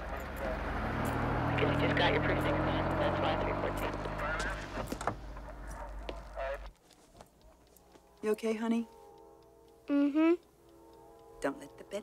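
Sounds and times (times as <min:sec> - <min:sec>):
car engine idling: 0:00.0 - 0:06.5.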